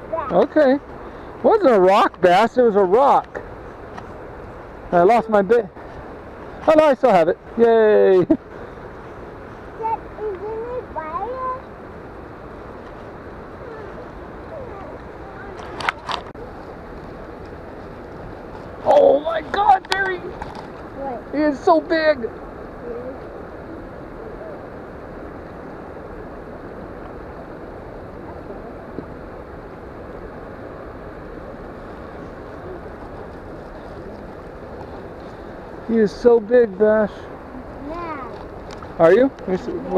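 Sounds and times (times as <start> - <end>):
river current rushing: 0.0 - 39.9.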